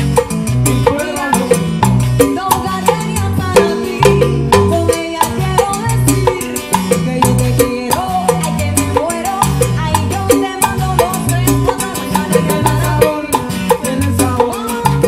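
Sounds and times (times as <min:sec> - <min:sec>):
bass line: 0:00.0 - 0:15.0
guitar: 0:00.0 - 0:15.0
live band playing upbeat music: 0:00.0 - 0:15.0
steady percussion: 0:00.0 - 0:15.0.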